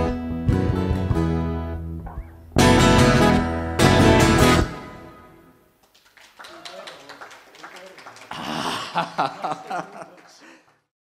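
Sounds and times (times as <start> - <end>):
audience clapping: 5.8 - 10.9
short laugh: 8.4 - 10.1.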